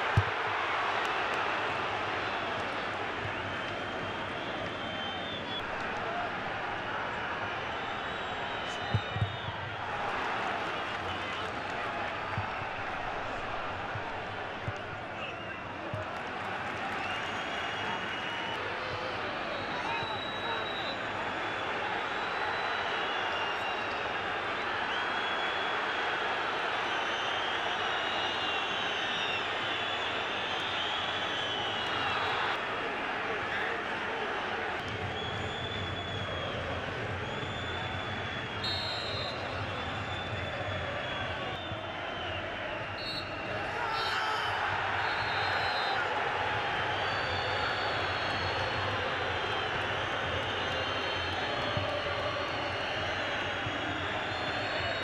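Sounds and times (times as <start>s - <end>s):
referee whistle blasts: 37.3s - 51.9s.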